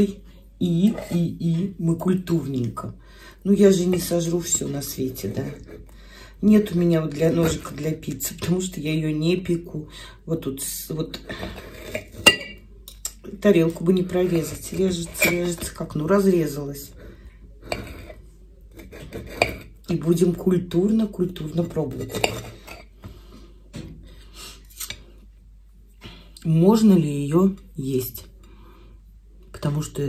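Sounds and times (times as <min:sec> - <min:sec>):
knife and fork cutting pizza: 0:14.2 - 0:15.6, 0:17.6 - 0:19.7
cutlery scraping on plate: 0:15.0 - 0:15.7, 0:17.6 - 0:18.2, 0:18.8 - 0:19.7, 0:22.0 - 0:22.9.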